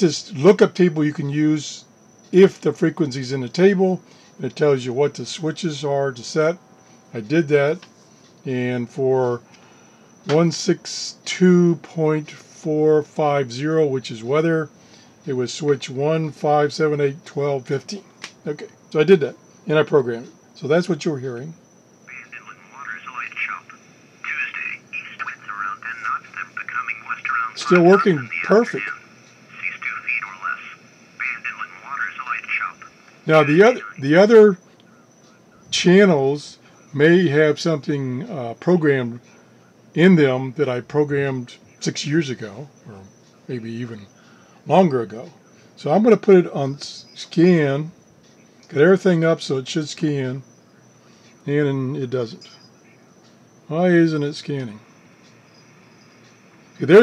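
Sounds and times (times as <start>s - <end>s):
man speaking: 0.0s - 7.8s, 8.5s - 9.4s, 10.3s - 34.6s, 35.7s - 39.3s, 40.0s - 44.1s, 44.7s - 47.9s, 48.7s - 50.4s, 51.5s - 52.6s, 53.7s - 54.8s, 56.8s - 57.0s
radio static hiss: 0.0s - 47.9s, 53.6s - 57.0s
voice through small radio speaker: 22.1s - 34.6s.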